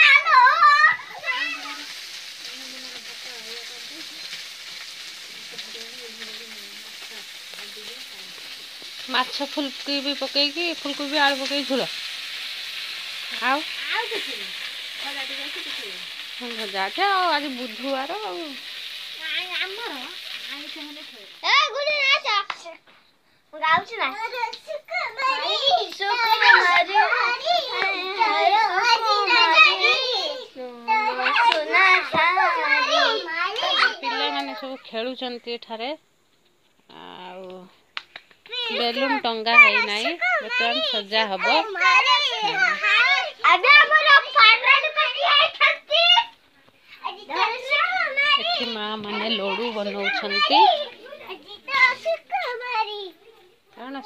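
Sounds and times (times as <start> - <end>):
food sizzling in hot oil: 0.0 - 22.8, 23.5 - 54.0
children talking: 0.0 - 22.9, 23.5 - 35.7, 36.9 - 54.0.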